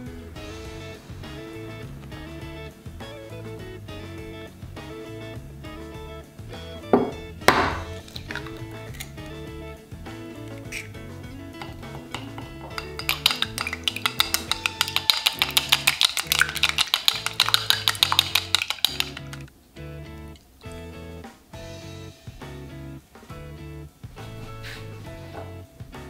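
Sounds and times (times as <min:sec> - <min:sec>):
soft music: 0:00.0 - 0:26.0
egg cracking: 0:07.5 - 0:09.3, 0:11.6 - 0:19.5
chopsticks beating egg in glass bowl: 0:11.6 - 0:19.4.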